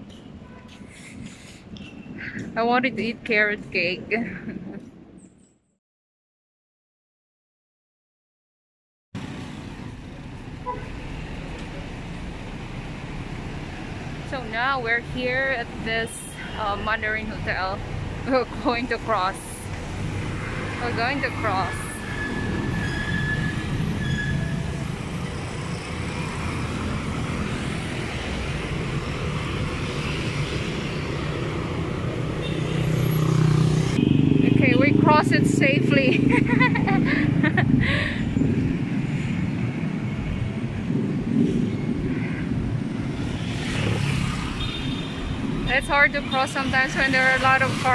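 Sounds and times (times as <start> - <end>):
traffic rumble of passing vehicles: 9.2 - 47.9
vehicle horn toot: 10.6 - 10.9.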